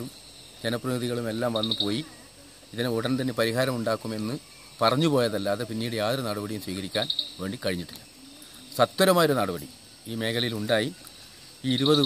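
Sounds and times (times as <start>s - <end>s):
man speaking: 0.0s - 8.1s, 8.7s - 11.0s, 11.6s - 12.0s
insect chirping: 0.0s - 12.0s.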